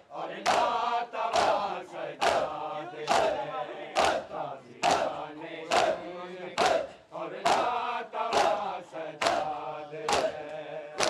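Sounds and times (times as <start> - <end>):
crowd chanted shout: 0.0 - 10.5
chanting voices: 0.0 - 11.0
crowd beating their chests: 0.0 - 11.0.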